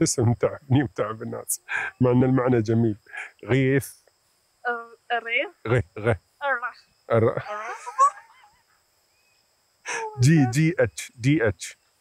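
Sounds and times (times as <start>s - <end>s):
person exclaiming: 0.0s - 3.8s, 5.7s - 6.2s, 7.1s - 8.2s, 9.9s - 11.6s.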